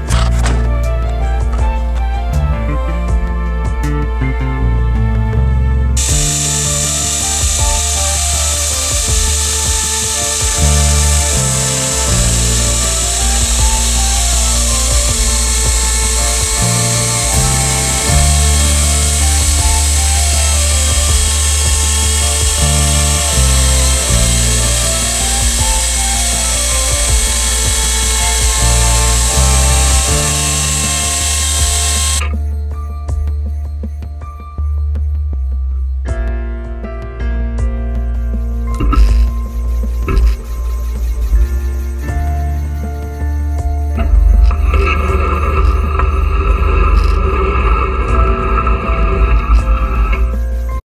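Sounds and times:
background music: 0.0s - 50.8s
electric chainsaw sawing log: 6.0s - 32.3s, 44.0s - 50.8s.

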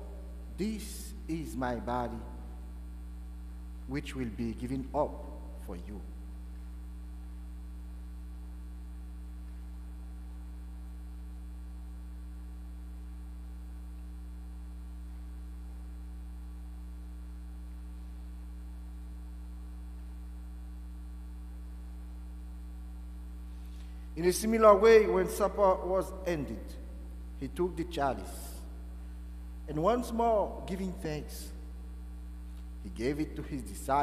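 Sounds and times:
electrical mains hum: 0.0s - 34.0s.

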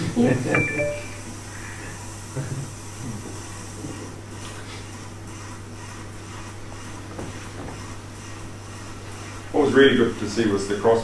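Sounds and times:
steady low hum: 0.0s - 3.2s.

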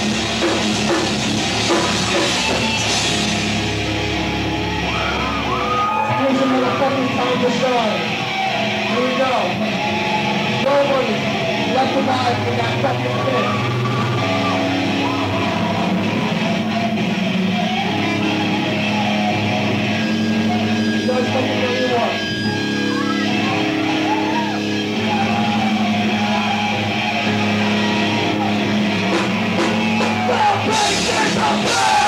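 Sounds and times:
bass guitar: 0.0s - 32.0s
electric guitar chords: 0.0s - 32.0s.

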